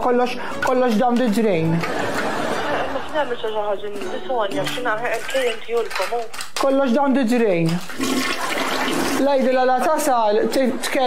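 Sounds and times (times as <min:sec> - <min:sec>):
person speaking: 0:00.0 - 0:01.9, 0:02.6 - 0:08.0, 0:09.0 - 0:11.0.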